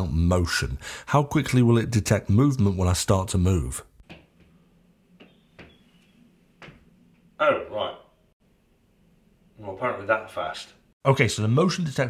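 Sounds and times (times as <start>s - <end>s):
soft footsteps on a floor: 5.2s - 7.3s.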